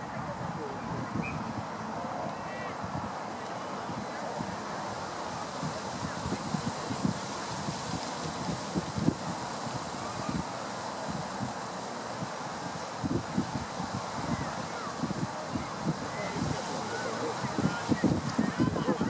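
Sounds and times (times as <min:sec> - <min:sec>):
wind buffeting microphone: 0:00.0 - 0:19.0
outdoor hiss: 0:00.6 - 0:19.0.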